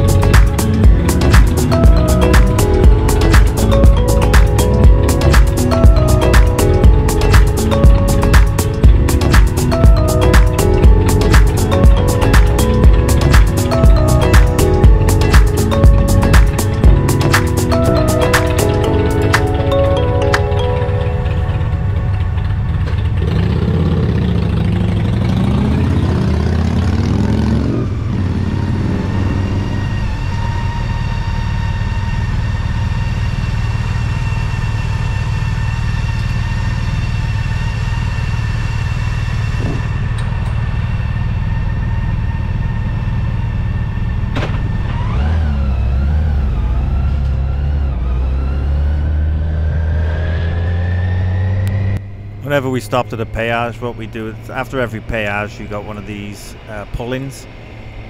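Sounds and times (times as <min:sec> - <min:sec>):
motorcycle engine idling: 0:20.4 - 0:25.5
motorcycle engine revving: 0:20.5 - 0:58.0.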